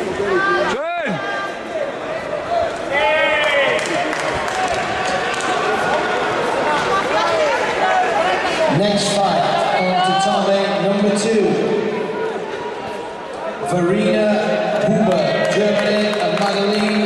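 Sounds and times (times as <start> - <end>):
people calling and shouting: 0.0 - 15.8
chatter of a large hall: 0.0 - 17.0.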